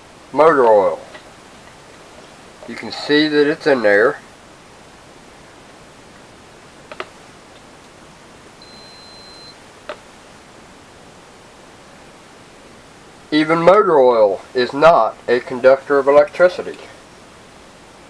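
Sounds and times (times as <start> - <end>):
multimeter continuity beep: 8.6 - 9.6.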